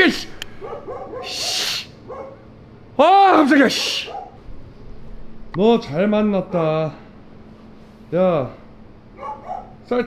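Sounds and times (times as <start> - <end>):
dog barking: 0.6 - 2.5, 3.7 - 4.4, 9.2 - 9.9.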